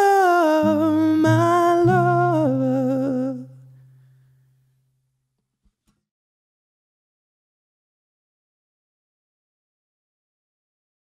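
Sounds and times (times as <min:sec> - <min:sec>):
man singing held note: 0:00.0 - 0:03.7
acoustic guitar: 0:00.0 - 0:05.0.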